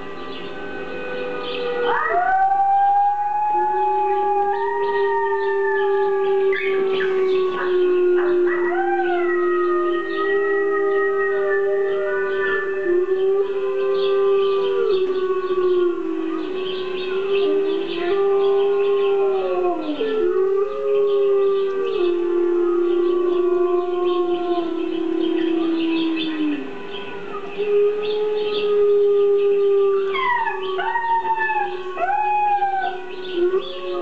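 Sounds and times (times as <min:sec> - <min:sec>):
wolves howling through speaker: 0:00.0 - 0:34.0.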